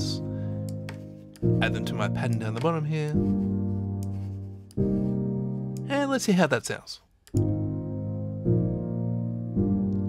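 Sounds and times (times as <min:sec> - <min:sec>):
piano chords: 0:00.0 - 0:06.6, 0:07.3 - 0:10.0.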